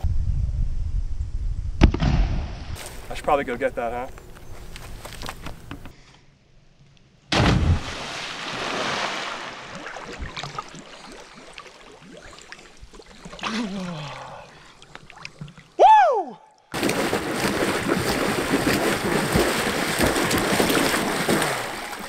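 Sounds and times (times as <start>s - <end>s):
swimmer splashing: 7.7s - 14.2s, 16.8s - 22.0s
water lapping: 7.9s - 15.8s, 16.8s - 22.0s.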